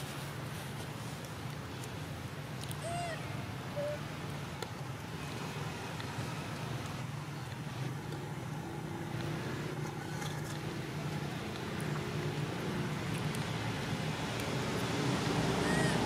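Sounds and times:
vehicle engine rumbling: 0.0s - 16.0s.

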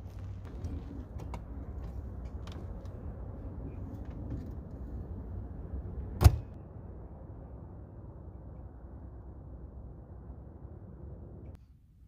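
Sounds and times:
low background rumble: 0.0s - 12.0s
door slamming shut: 6.2s - 6.6s.

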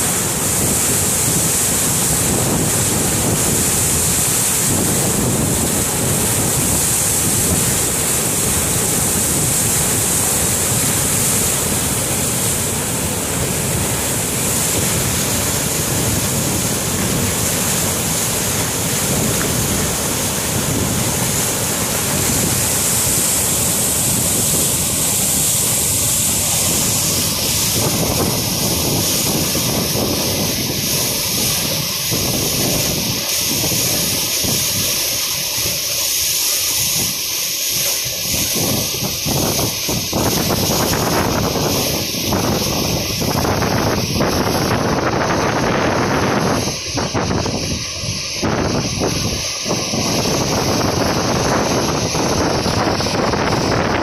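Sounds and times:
water rushing over rocks: 0.0s - 54.0s.

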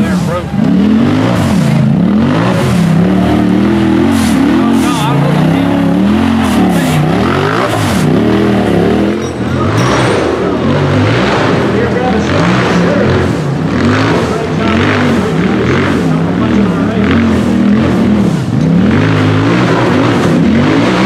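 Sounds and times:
buggy engine revving: 0.0s - 21.0s.

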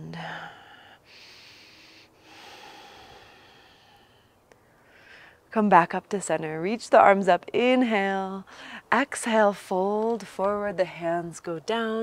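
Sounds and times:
woman breathing deeply: 0.3s - 5.5s.

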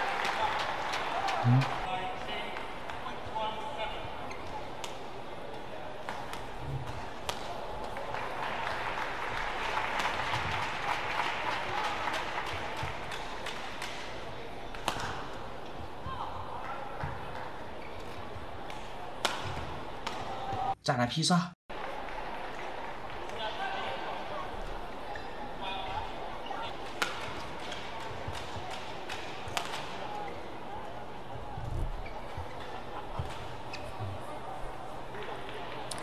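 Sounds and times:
racket striking shuttlecock: 14.7s - 15.2s, 18.7s - 20.3s, 26.9s - 29.9s
murmur of crowd voices: 21.8s - 36.0s.

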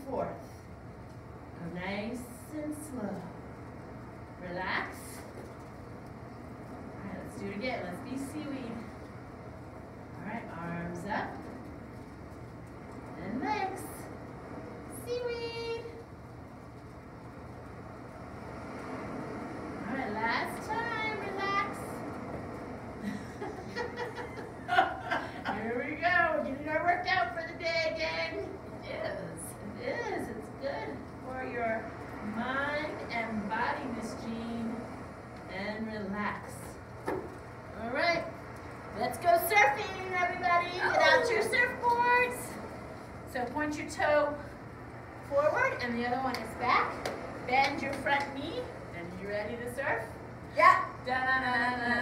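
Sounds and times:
woman talking: 0.0s - 0.6s, 1.6s - 3.4s, 4.4s - 5.3s, 7.0s - 8.9s, 10.2s - 11.6s, 13.1s - 14.2s, 14.9s - 16.0s, 19.8s - 22.1s, 23.7s - 36.8s, 37.7s - 42.7s, 43.3s - 44.6s, 45.2s - 52.0s
ocean waves surf: 12.9s - 48.9s.

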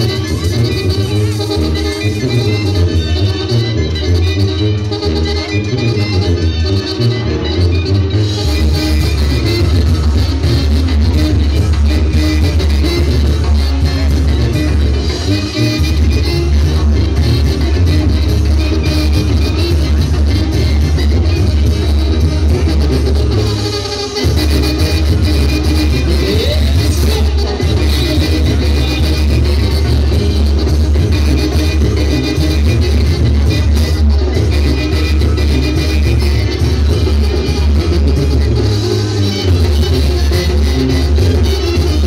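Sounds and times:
brass band playing live: 0.0s - 42.0s.

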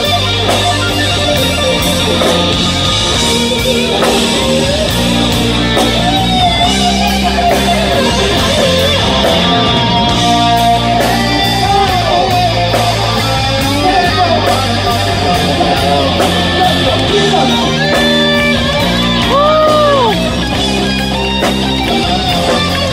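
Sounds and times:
electric lead guitar melody: 0.0s - 22.9s
live rock band: 0.0s - 22.9s.

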